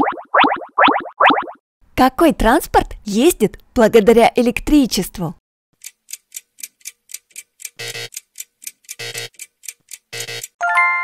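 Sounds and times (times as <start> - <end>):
clock ticking: 5.8 - 10.6.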